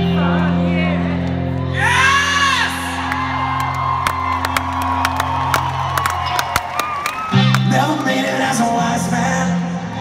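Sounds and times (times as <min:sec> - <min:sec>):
crowd whooping: 0:01.6 - 0:08.5.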